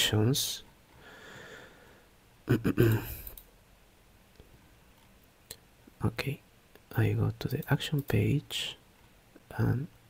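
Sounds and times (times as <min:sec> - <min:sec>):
man coughing: 0:02.5 - 0:03.2.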